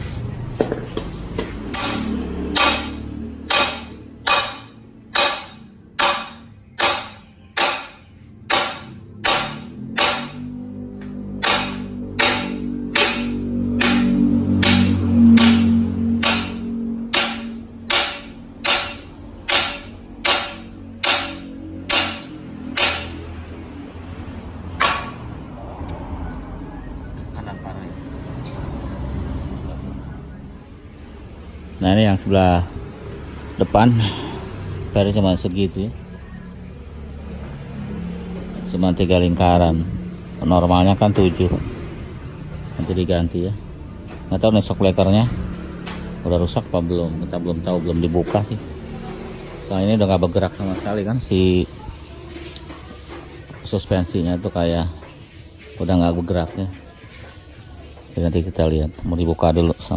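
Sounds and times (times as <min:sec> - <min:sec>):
hammer striking steel: 0:00.1 - 0:23.4, 0:24.7 - 0:25.3.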